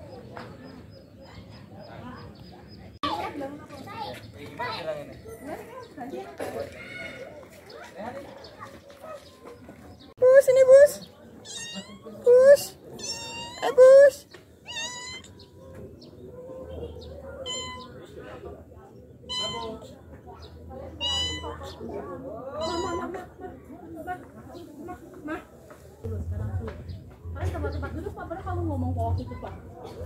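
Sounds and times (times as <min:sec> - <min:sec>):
cat meowing: 0:11.4 - 0:12.1, 0:12.9 - 0:13.9, 0:14.6 - 0:15.3, 0:22.6 - 0:23.1.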